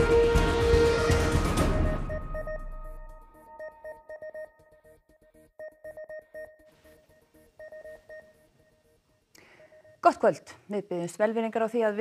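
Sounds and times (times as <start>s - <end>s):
electronic pulsing beep music: 1.0s - 9.0s.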